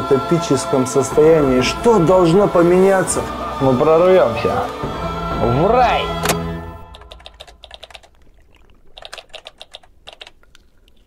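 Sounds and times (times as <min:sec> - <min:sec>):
computer keyboard typing: 0:06.8 - 0:08.2, 0:09.0 - 0:10.5.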